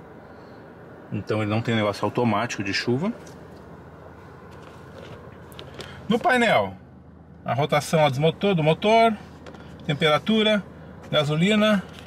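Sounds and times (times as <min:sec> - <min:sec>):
car engine idling hum: 0:00.0 - 0:12.0
faint clicks and rustles: 0:03.2 - 0:06.4, 0:09.3 - 0:09.9, 0:11.8 - 0:12.0.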